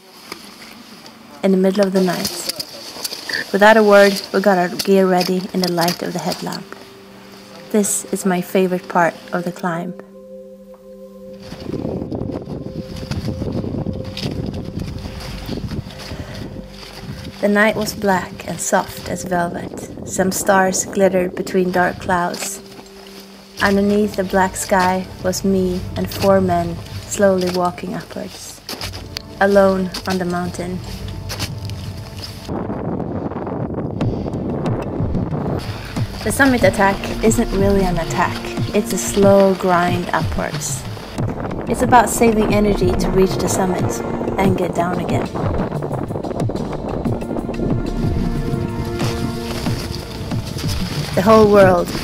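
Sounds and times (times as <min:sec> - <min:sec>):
wind buffeting microphone: 0:11.4 - 0:52.0.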